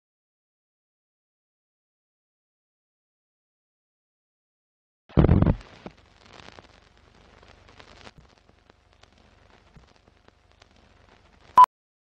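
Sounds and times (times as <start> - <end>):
film pops and crackle: 5.1 - 11.6.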